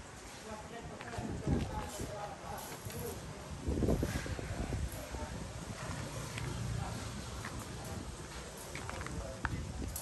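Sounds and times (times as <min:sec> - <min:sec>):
faint voices: 0:00.3 - 0:10.0.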